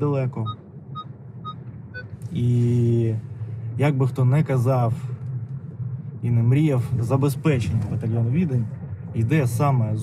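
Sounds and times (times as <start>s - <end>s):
man speaking: 0.0s - 0.6s, 2.3s - 5.1s.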